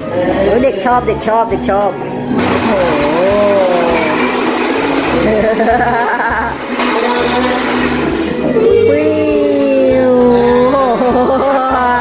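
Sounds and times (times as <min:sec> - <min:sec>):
hair dryer blowing: 0:02.4 - 0:08.7.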